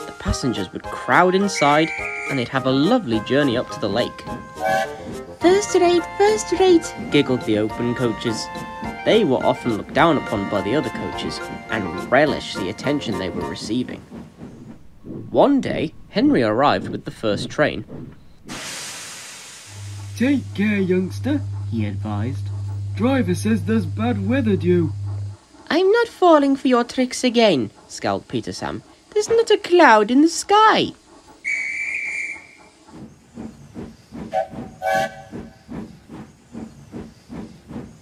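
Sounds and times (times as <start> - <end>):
steam hissing: 1.2 - 38.0
high train whistle blast: 1.4 - 2.6, 4.6 - 5.1, 31.4 - 32.6, 34.3 - 35.4
low whistle toots: 1.6 - 2.5, 31.4 - 32.7, 34.3 - 35.4
low steady hum: 19.7 - 26.6.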